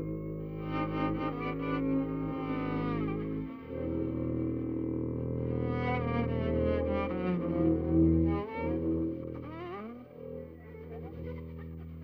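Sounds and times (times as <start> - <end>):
bowed strings playing: 0.0 - 12.0
double basses low drone: 0.0 - 12.0.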